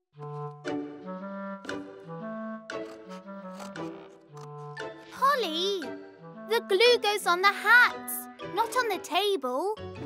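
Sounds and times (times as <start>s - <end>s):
light background music: 0.2s - 10.0s.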